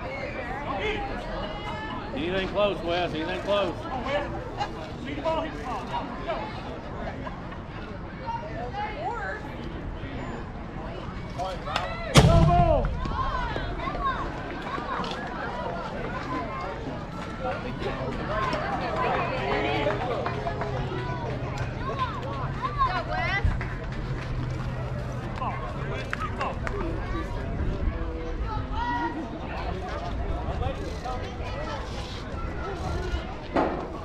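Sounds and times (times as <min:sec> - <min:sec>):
people shouting and cheering: 0:11.6 - 0:16.5.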